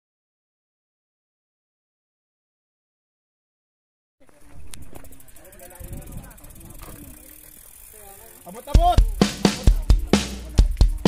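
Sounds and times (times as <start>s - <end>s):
bikes clattering: 4.2s - 11.0s
group of people talking: 4.2s - 11.0s.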